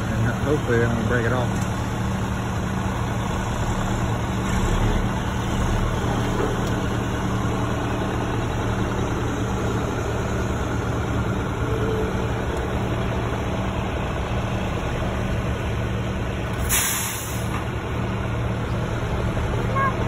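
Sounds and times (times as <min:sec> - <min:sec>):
diesel engine running: 0:00.0 - 0:20.0
air brake hiss: 0:16.6 - 0:17.6.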